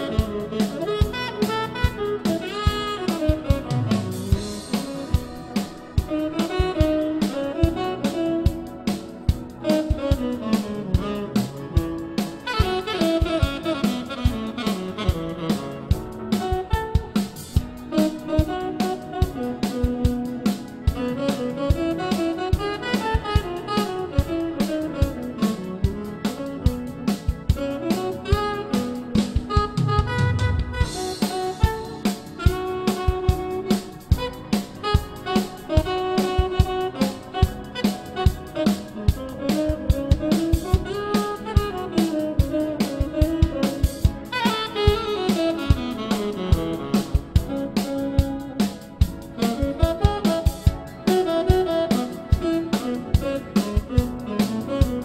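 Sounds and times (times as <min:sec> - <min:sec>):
drum-kit beat: 0:00.0 - 0:55.0
guitar: 0:00.0 - 0:55.0
saxophone line: 0:00.0 - 0:55.0.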